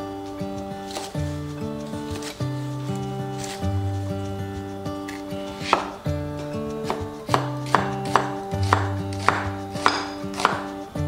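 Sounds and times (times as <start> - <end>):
knife chopping on wooden board: 5.1 - 6.0, 6.8 - 10.8.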